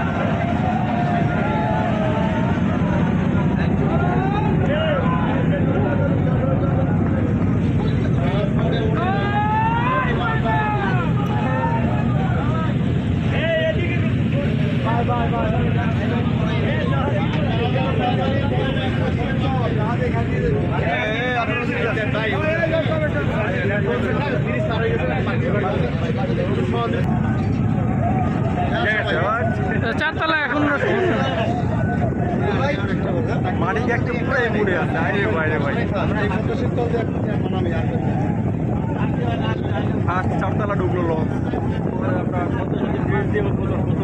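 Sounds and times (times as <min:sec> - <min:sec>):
boat engine droning: 0:00.0 - 0:44.0
people talking: 0:00.0 - 0:44.0.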